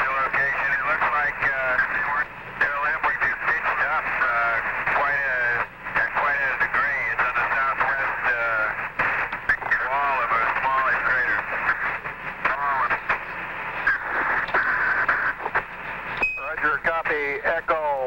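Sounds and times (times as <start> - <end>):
radio static crackle: 0.0 - 18.0
voices over tinny radio: 0.0 - 18.0.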